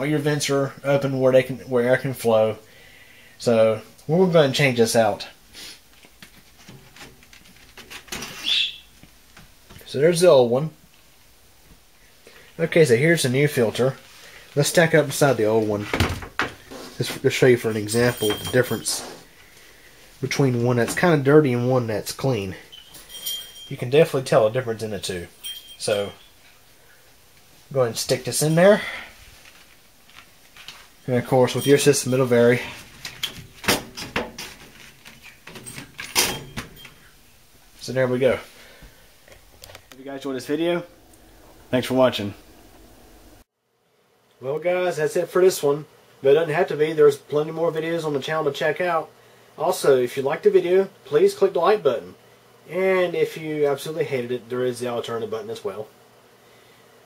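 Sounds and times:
short high squeak: 8.3 - 8.9.

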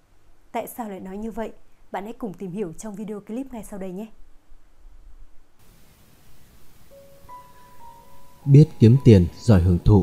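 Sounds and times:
faint hiss: 0.0 - 10.0
soft background music note: 6.5 - 10.0.

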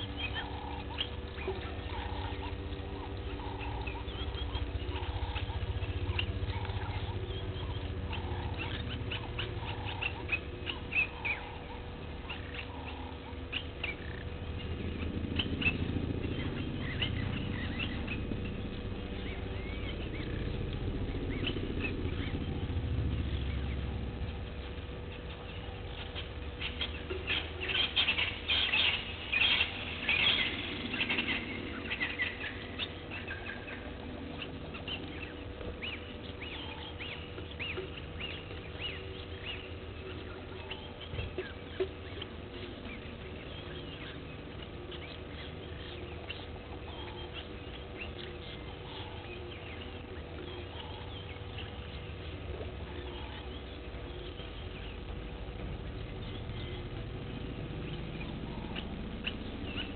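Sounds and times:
faint steady hum: 0.0 - 59.9
low rumble: 0.0 - 59.9.

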